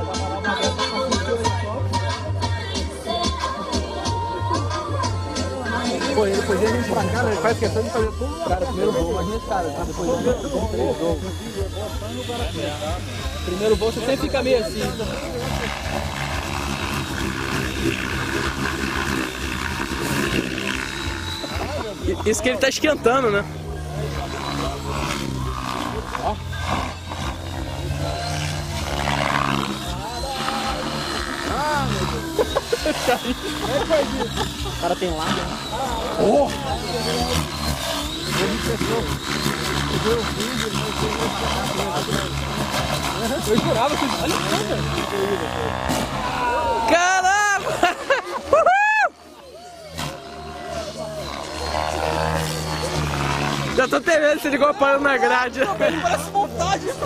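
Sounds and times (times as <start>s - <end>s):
helicopter rotor drone: 0.0s - 57.0s
thin high whine: 3.3s - 57.0s
loud wavering shouts: 44.3s - 53.8s.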